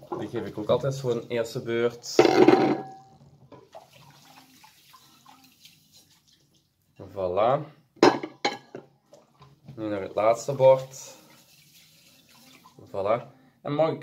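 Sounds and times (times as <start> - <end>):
running water in sink: 0.0 - 6.7, 9.2 - 13.0
plates clinking: 2.2 - 3.2, 8.0 - 8.9.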